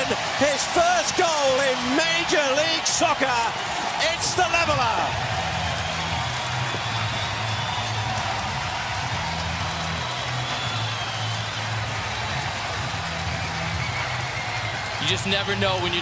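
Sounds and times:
stadium crowd cheering: 0:00.0 - 0:16.0.

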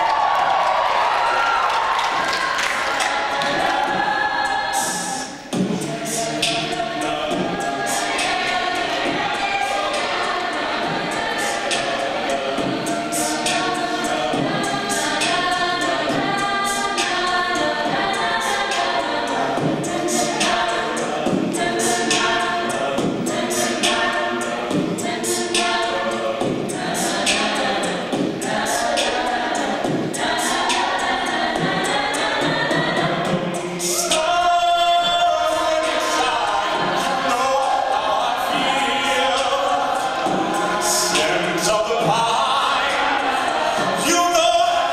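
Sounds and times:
a cappella group singing: 0:00.0 - 0:44.9
vocal percussion beat: 0:00.0 - 0:44.9.

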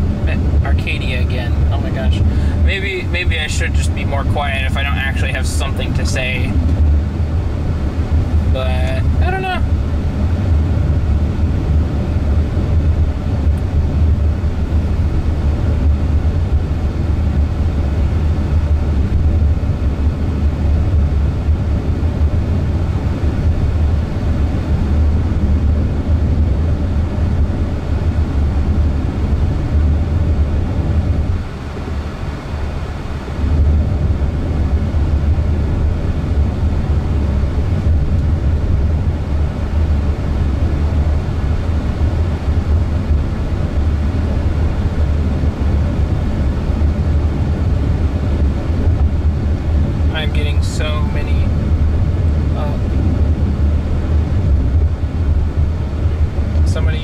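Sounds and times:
road and tyre noise in car: 0:00.0 - 0:57.0.

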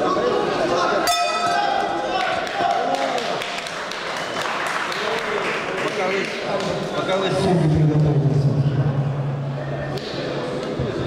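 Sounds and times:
crowd shouting and talking: 0:00.0 - 0:11.0
sharp ringing: 0:01.1 - 0:01.8.

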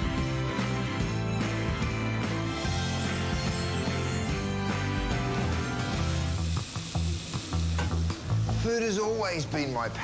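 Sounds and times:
food sizzling in a frying pan: 0:02.7 - 0:10.0.

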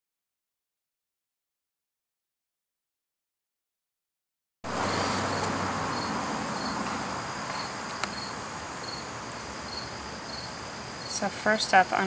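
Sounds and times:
cricket chirping: 0:04.7 - 0:12.0
steady background hiss: 0:04.7 - 0:12.0.

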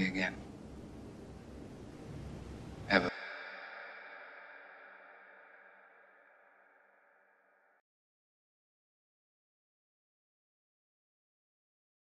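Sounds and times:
low rumble and hiss: 0:00.0 - 0:06.5.

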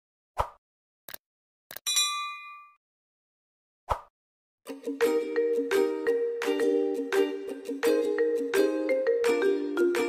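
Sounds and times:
bell-like notification ding: 0:01.9 - 0:02.8.

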